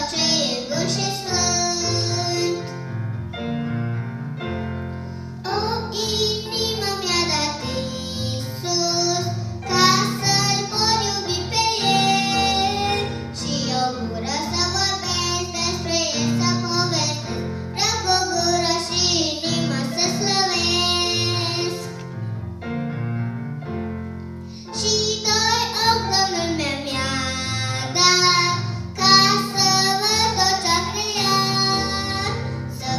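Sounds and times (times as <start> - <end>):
girl singing into a microphone: 0.0 - 2.7, 5.5 - 22.0, 24.6 - 32.9
instrumental accompaniment: 0.0 - 32.9.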